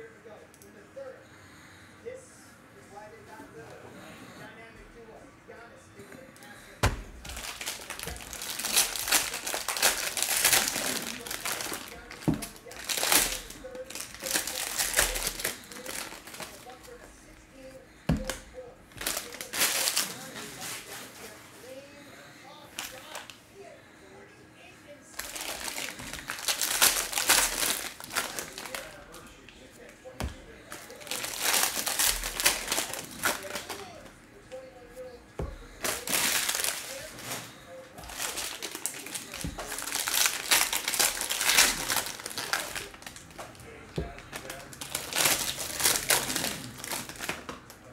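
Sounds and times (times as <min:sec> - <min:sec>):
foil wrappers tearing and crinkling: 0:07.2 - 0:17.0, 0:18.2 - 0:21.5, 0:22.7 - 0:23.4, 0:25.2 - 0:29.7, 0:30.6 - 0:34.1, 0:35.6 - 0:47.9.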